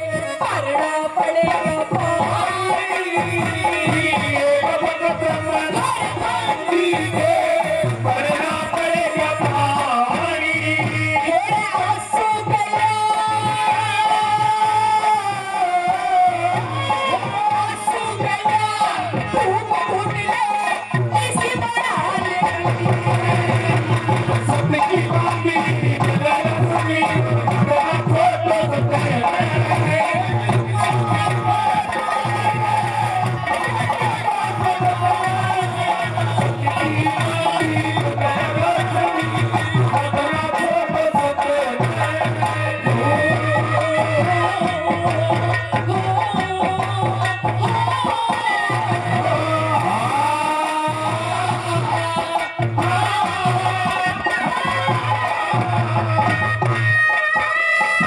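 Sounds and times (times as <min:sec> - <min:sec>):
fast drum beat: 0:00.0 - 0:58.0
live folk band playing: 0:00.0 - 0:58.0.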